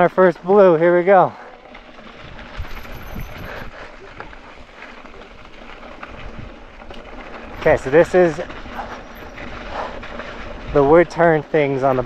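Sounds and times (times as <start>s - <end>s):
bike knocking and rattling: 0.0s - 12.0s
bike tyres on gravel: 0.0s - 12.0s
wind on microphone: 2.2s - 4.3s.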